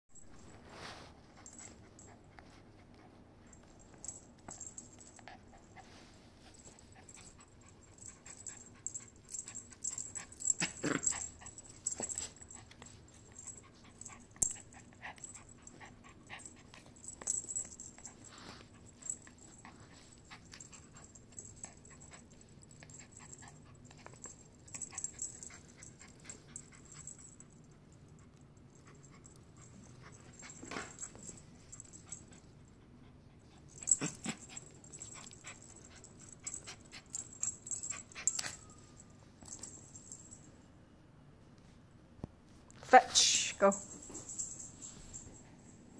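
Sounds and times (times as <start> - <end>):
toy and paws on rug: 0.2 - 40.6, 41.6 - 45.9
dog growling: 10.4 - 11.4.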